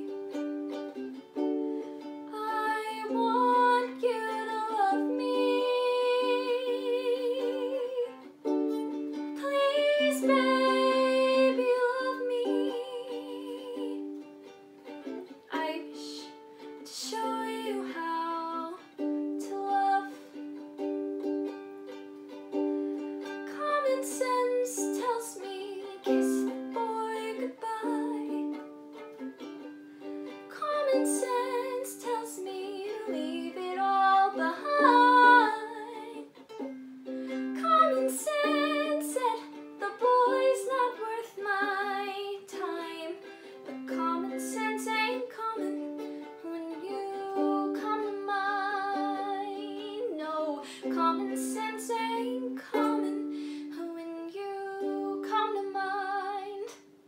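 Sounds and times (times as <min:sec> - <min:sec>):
ukulele strummed chords: 0:00.0 - 0:57.0
girl singing with vibrato: 0:02.2 - 0:14.2, 0:15.4 - 0:20.4, 0:23.2 - 0:28.8, 0:30.4 - 0:36.4, 0:37.3 - 0:57.0.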